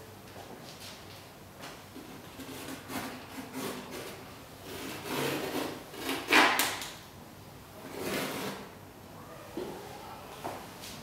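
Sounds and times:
knife scraping canvas: 2.2 - 6.6, 7.8 - 8.7.

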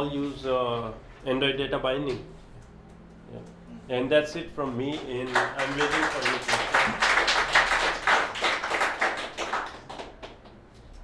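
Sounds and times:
audience applauding: 5.0 - 10.6.

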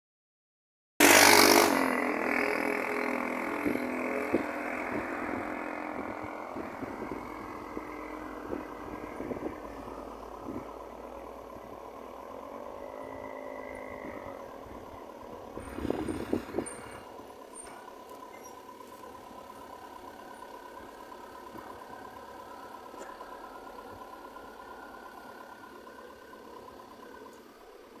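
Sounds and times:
car engine idling: 3.1 - 28.0.

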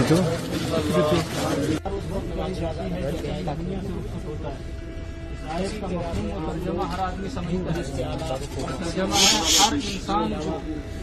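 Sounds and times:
loud rasping hiss: 9.1 - 10.1.

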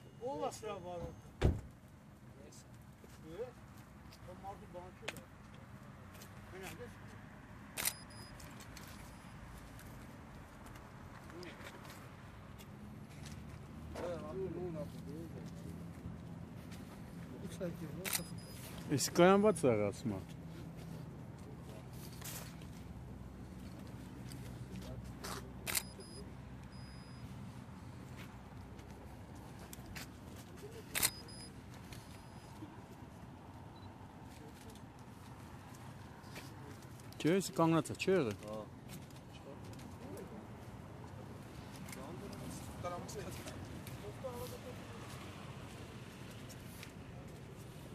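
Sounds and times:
outdoor background noise: 0.0 - 47.9
distant people talking: 13.9 - 28.0.

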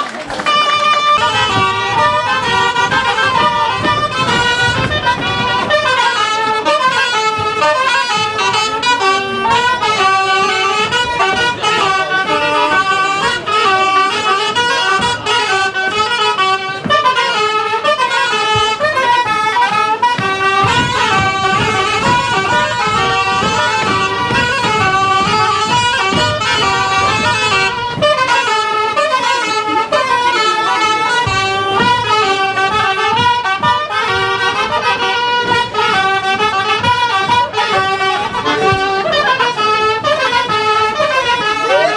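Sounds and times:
wind band playing folk dance tune: 0.0 - 41.9.

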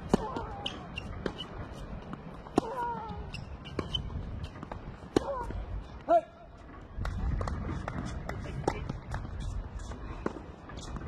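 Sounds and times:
tennis racket hitting ball: 0.0 - 5.5.

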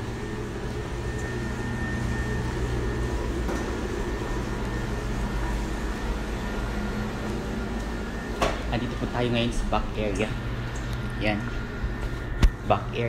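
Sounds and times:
machinery humming: 0.0 - 13.0.

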